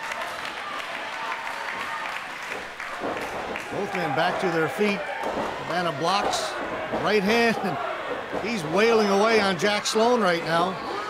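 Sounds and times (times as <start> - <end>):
crowd clapping: 0.0 - 7.7.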